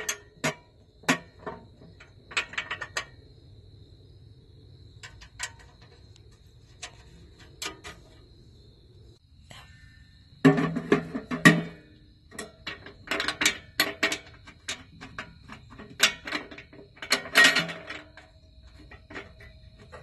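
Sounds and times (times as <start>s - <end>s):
sheet metal parts clanking: 0.0s - 3.2s, 10.4s - 20.0s.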